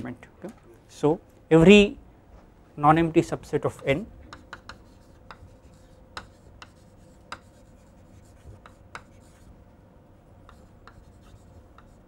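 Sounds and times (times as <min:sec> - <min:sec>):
faint steady hum: 0:00.0 - 0:12.0
chalk tapping and scraping: 0:03.8 - 0:09.6, 0:10.4 - 0:12.0.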